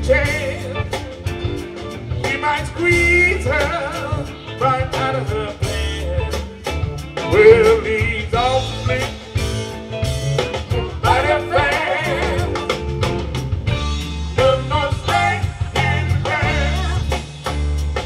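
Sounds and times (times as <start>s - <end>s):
electric blues band playing: 0.0s - 18.0s
person singing: 7.2s - 9.5s, 11.0s - 12.8s, 14.4s - 17.2s.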